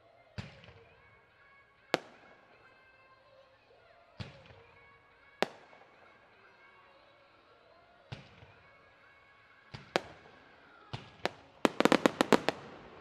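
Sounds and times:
fireworks bangs: 9.7s - 13.0s.

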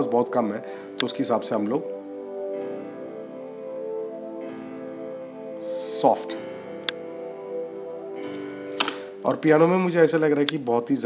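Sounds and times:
soft synth pad: 0.0s - 9.2s
piano chords: 0.0s - 11.0s.

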